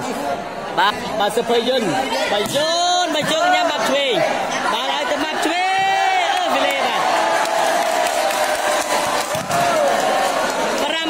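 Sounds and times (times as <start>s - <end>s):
crowd cheering and clapping: 5.2s - 11.0s.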